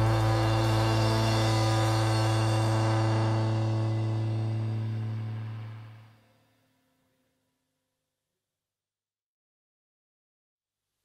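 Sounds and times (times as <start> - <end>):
band chord on bass and guitars: 0.0 - 6.2.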